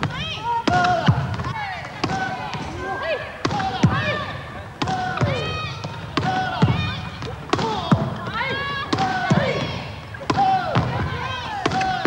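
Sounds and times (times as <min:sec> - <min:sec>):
volleyballs smacking: 0:00.0 - 0:02.8, 0:03.4 - 0:12.0
voices in gym: 0:00.0 - 0:12.0.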